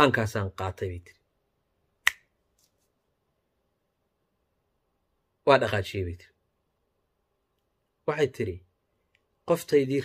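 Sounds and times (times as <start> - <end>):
finger snap: 2.0 - 2.4.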